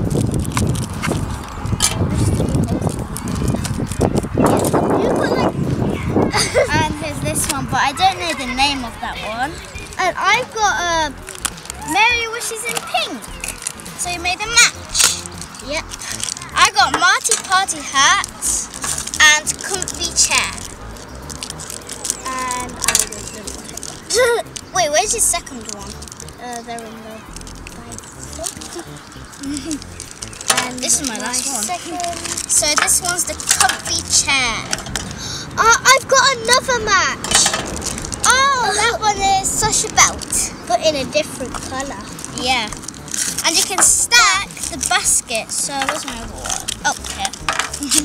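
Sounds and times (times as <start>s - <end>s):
plastic packaging crinkling: 0.0s - 4.8s, 11.1s - 35.1s, 37.3s - 40.5s, 41.2s - 48.0s
wind rumbling on microphone: 0.0s - 48.0s
child's held voice sound: 4.7s - 20.7s, 22.2s - 29.8s, 38.2s - 48.0s
scissors cutting plastic: 14.9s - 26.7s, 27.3s - 35.1s, 41.5s - 48.0s.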